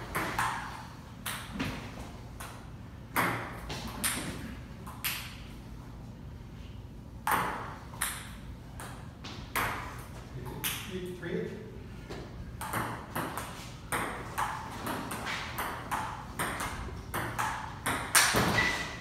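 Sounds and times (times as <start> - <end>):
ping-pong ball hitting paddles and table: 0.0 - 5.5, 7.2 - 11.0, 12.4 - 19.0.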